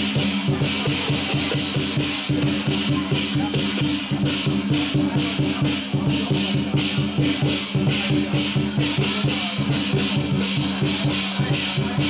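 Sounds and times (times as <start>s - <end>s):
cymbals clashing: 0.0s - 12.0s
drums beating: 0.0s - 12.0s.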